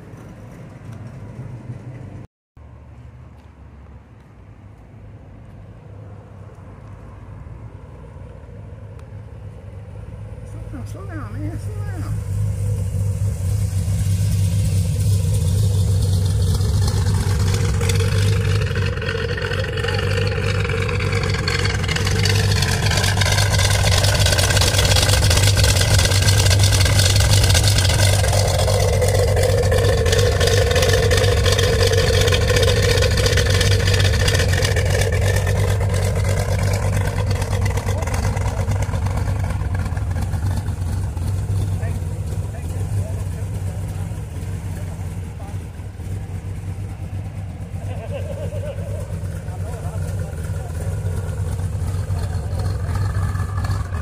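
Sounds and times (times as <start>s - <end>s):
car engine idling: 4.6s - 54.0s.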